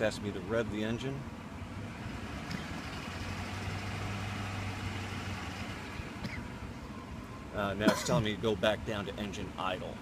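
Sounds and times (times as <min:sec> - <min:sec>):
car engine at raised revs: 0:00.0 - 0:06.9.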